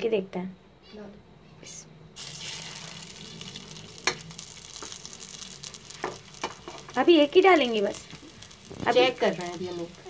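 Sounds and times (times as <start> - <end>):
meat sizzling in hot oil: 2.2 - 10.0.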